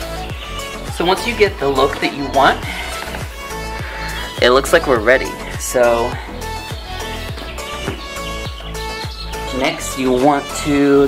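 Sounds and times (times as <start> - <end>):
music with deep bass hits: 0.0 - 9.8.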